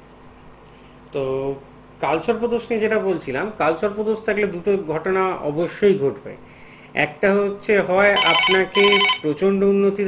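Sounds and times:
person speaking: 7.0 - 10.0
telephone ringtone: 8.2 - 9.3.

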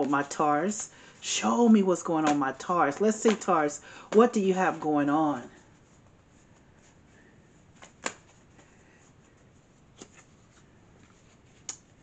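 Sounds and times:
cards snapping and tapping: 7.8 - 8.3.

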